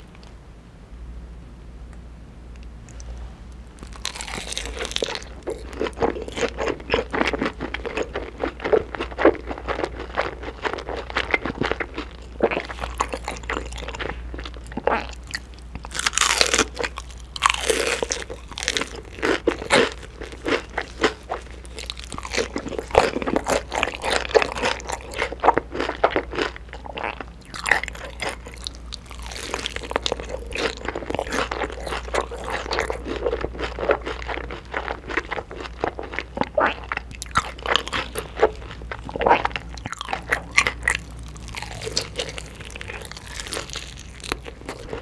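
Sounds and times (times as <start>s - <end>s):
crunching and chewing fried chicken: 3.8s - 45.0s.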